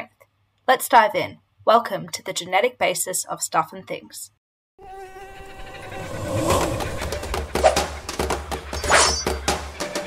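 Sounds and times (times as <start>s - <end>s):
rising whoosh: 5.7s - 8.0s.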